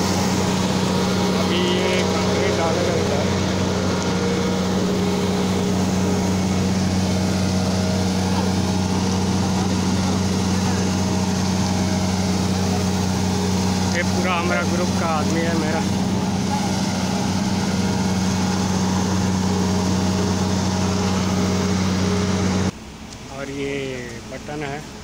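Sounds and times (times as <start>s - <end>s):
diesel engine low drone: 0.0s - 25.0s.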